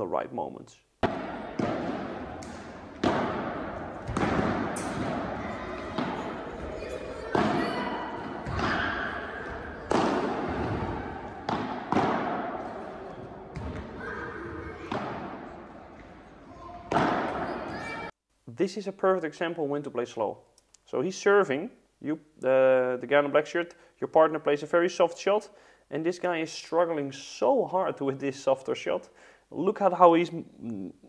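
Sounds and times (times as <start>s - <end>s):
padel ball hits: 1.0s - 6.7s, 7.3s - 14.0s, 14.9s - 15.4s, 16.9s - 17.4s
players' voices: 1.2s - 18.7s.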